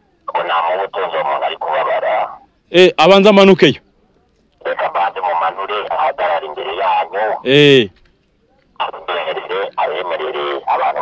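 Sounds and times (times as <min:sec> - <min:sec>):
man talking into a microphone: 0:00.3 - 0:03.8, 0:04.6 - 0:07.9, 0:08.8 - 0:11.0.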